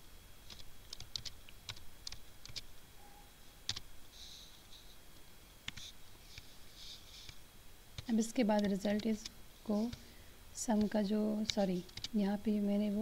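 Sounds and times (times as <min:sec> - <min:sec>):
computer keyboard keystrokes: 0:00.5 - 0:02.6, 0:08.0 - 0:09.3, 0:10.8 - 0:12.2.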